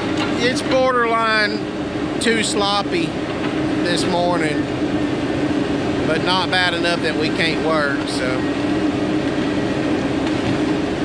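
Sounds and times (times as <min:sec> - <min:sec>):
diesel engine droning: 0:00.0 - 0:11.0.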